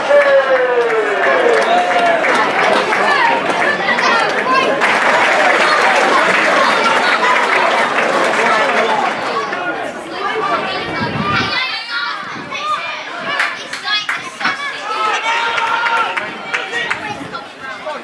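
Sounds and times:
crowd cheering and chattering: 0:00.0 - 0:18.0
players shouting: 0:00.0 - 0:18.0.

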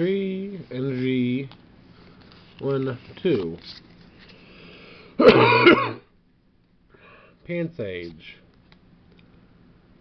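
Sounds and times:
person coughing: 0:05.2 - 0:06.1.

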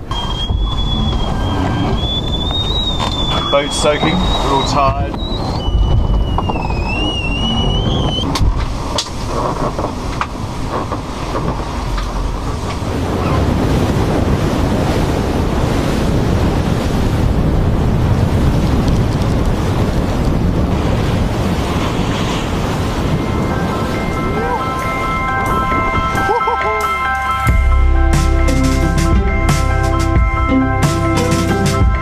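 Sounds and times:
wind buffeting microphone: 0:00.0 - 0:28.1
ocean surf rushing: 0:00.0 - 0:32.0
music with held notes: 0:24.1 - 0:32.0.

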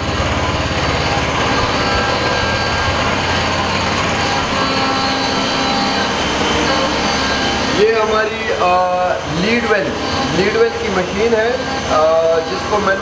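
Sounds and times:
constant high tones: 0:00.0 - 0:13.0
machine tools droning: 0:00.0 - 0:13.0.

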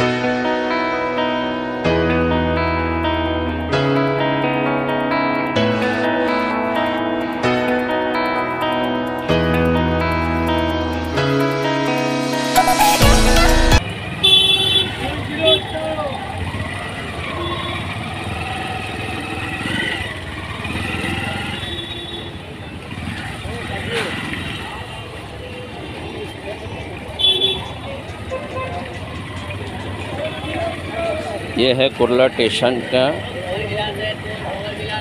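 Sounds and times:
passing traffic: 0:00.0 - 0:35.0
vehicle horn toots: 0:14.2 - 0:15.8, 0:21.4 - 0:22.4, 0:27.2 - 0:28.8
crowd voices: 0:22.3 - 0:35.0.

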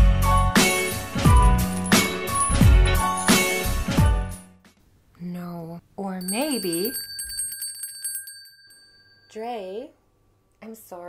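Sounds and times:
bell ringing in a trill: 0:00.4 - 0:03.8, 0:06.2 - 0:09.5.

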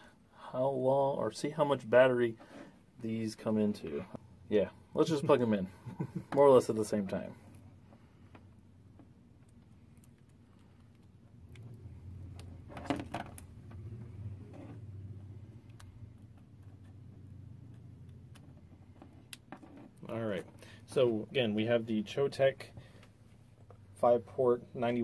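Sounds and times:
phones handled on tabletop: 0:12.3 - 0:13.8.

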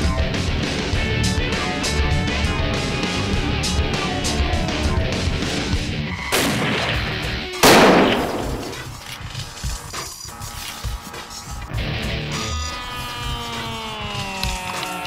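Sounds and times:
music: 0:00.0 - 0:15.0
loud gunshots: 0:06.3 - 0:08.9.

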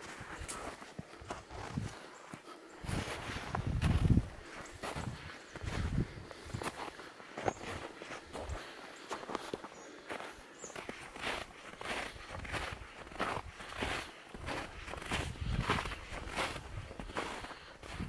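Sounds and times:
footsteps crunching through snow: 0:00.0 - 0:18.0.

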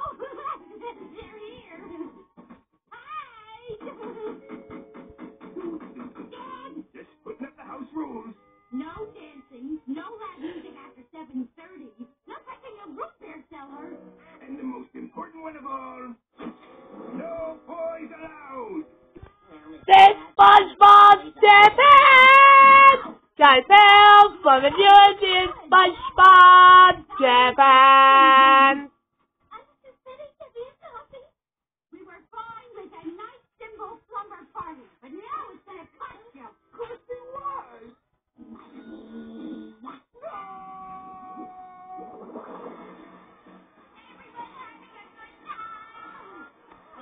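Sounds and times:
high voices singing on tv: 0:19.8 - 0:28.9
cartoon whale wailing cry: 0:19.9 - 0:23.0, 0:25.8 - 0:28.8.

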